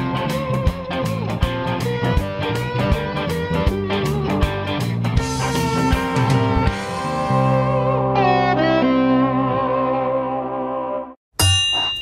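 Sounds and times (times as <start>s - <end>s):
held electric guitar chord: 5.2s - 10.6s
bright bell-like ding: 11.4s - 12.0s.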